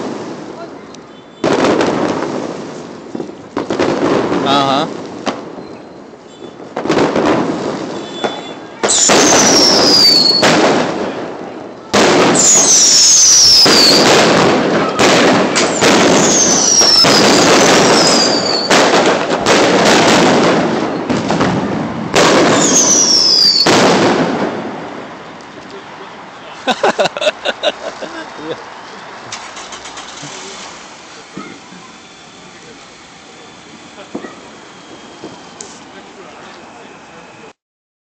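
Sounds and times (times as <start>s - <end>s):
fireworks crackling blasts: 0.0s - 37.6s
falling firework whistle: 5.4s - 11.0s, 11.9s - 24.5s, 28.9s - 37.5s.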